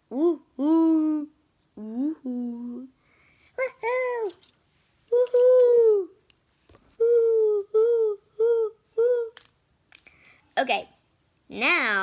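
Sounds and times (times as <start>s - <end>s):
girl calling woohoo: 5.1s - 6.2s.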